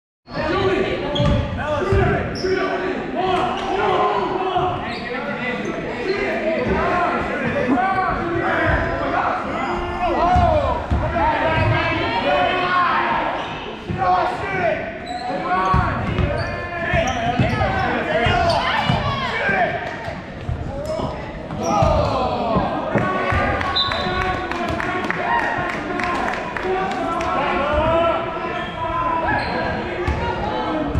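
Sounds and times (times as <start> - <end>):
players shouting: 5.9 - 19.8, 20.7 - 30.9.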